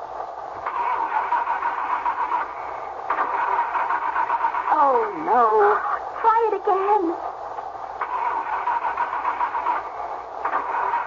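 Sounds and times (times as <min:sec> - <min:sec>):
car starter cranking engine: 0:00.6 - 0:05.0, 0:08.0 - 0:11.0.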